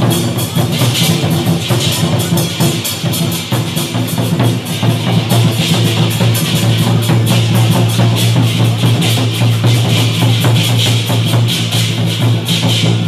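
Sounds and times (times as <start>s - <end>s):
barrel drum beaten fast: 0.0s - 13.0s
clashing cymbals: 0.0s - 13.0s.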